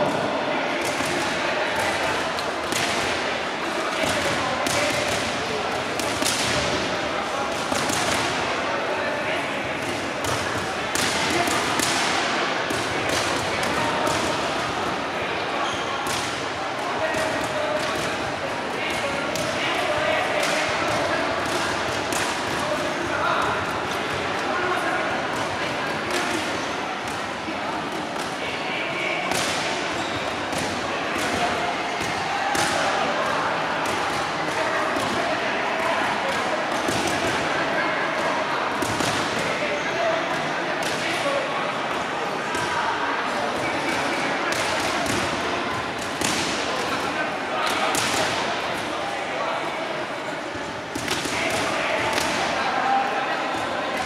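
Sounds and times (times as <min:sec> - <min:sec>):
murmur of crowd voices: 0:00.0 - 0:54.0.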